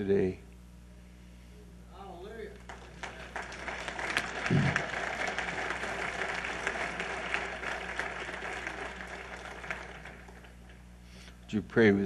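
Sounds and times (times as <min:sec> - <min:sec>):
congregation applauding: 0:02.5 - 0:11.0.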